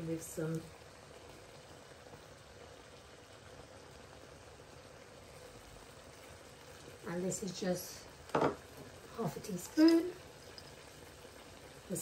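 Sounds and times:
gravy simmering in a frying pan: 0.0s - 12.0s.

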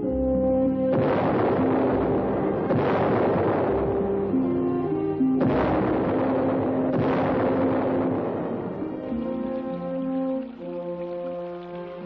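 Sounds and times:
orchestral music: 0.0s - 12.0s
cannon blast: 0.9s - 9.7s.

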